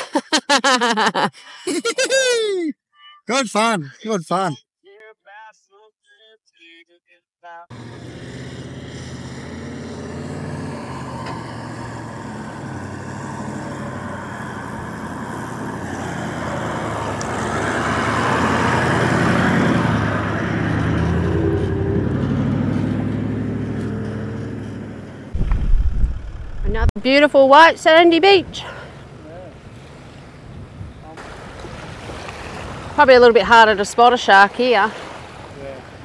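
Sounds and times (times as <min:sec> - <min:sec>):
four-wheel drive engine passing: 0:07.7 - 0:27.0
wind rumble on microphone: 0:25.3 - 0:26.9, 0:30.4 - 0:31.9.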